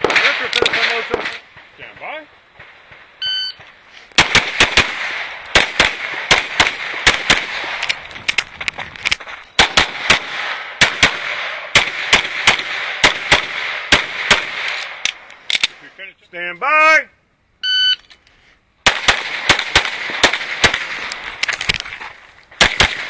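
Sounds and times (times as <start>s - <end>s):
pistol shots: 0.0s - 3.1s, 4.2s - 8.4s, 9.1s - 15.8s, 18.8s - 21.3s, 22.6s - 23.0s
shot timer beep: 3.2s - 3.6s, 17.6s - 18.0s.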